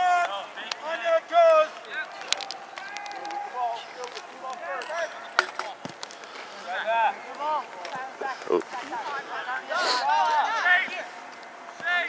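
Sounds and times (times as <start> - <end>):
voices calling out: 0.0 - 12.0.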